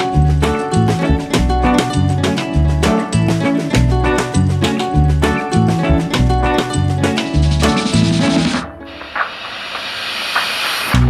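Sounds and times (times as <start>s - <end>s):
music: 0.0s - 11.0s
steady hiss: 8.9s - 11.0s.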